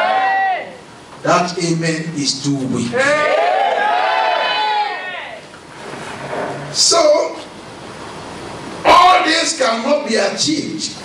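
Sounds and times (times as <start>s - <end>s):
man's amplified voice calling out: 1.2s - 3.3s, 8.8s - 11.0s.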